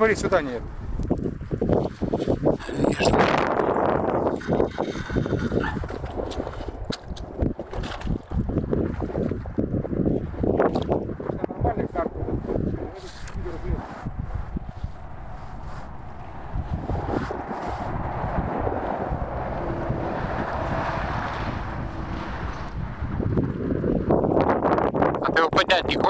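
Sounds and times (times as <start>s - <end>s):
wind rumbling on microphone: 0.0s - 26.0s.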